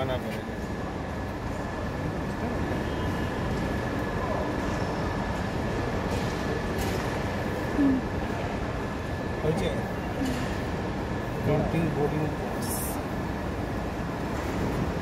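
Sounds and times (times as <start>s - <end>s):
airport terminal hum: 0.0s - 15.0s.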